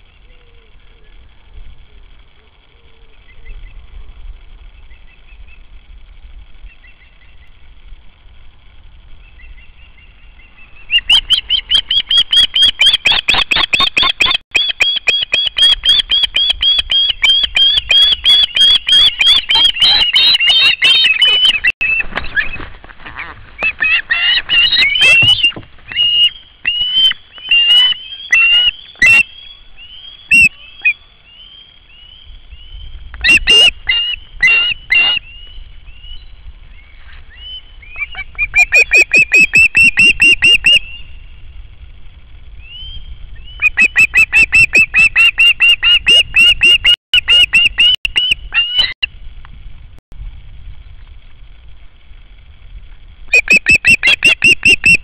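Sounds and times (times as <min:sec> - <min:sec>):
young osprey chirping: 0:09.3 - 0:22.0, 0:23.6 - 0:36.3.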